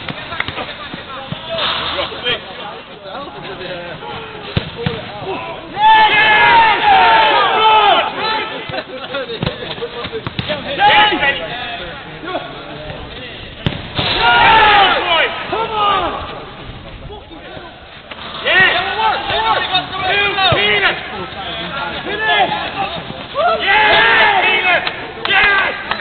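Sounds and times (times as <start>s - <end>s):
footballers shouting: 3.2s - 26.0s
ball being kicked: 9.4s - 10.6s.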